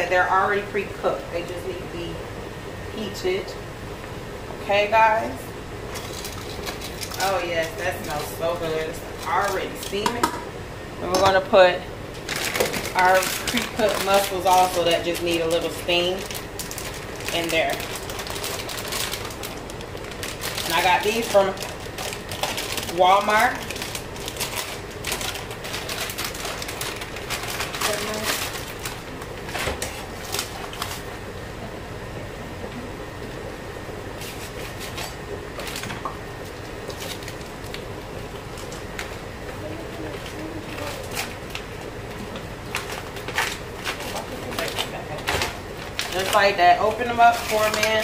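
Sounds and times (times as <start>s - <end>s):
plastic packaging crinkling: 5.9s - 10.0s, 12.2s - 31.1s, 34.1s - 39.3s, 40.0s - 48.0s.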